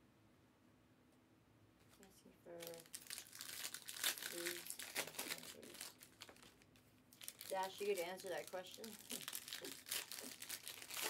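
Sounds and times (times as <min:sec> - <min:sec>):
card pack wrappers crinkling: 0:02.5 - 0:11.0.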